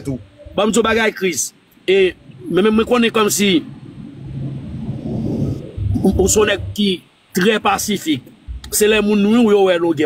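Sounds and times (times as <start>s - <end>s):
low rumbling noise: 0.0s - 10.0s.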